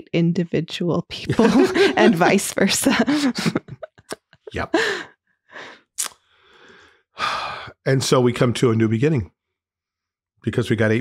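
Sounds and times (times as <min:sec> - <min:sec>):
person speaking: 0:01.1 - 0:05.0, 0:07.2 - 0:09.2
person breathing: 0:01.7 - 0:02.0, 0:04.6 - 0:07.8
mouth click: 0:06.0 - 0:06.2.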